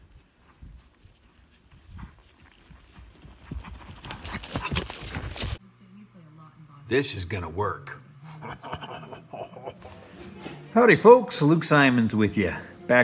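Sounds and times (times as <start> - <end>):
horse hoofbeats in dry grass: 0.0 - 5.6
low steady hum: 0.0 - 13.0.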